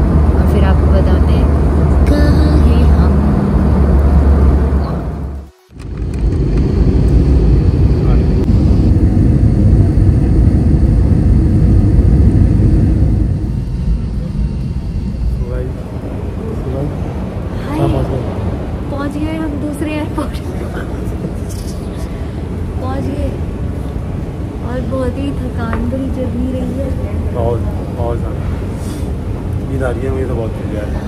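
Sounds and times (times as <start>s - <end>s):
airliner cabin engine rumble: 0.0s - 31.0s.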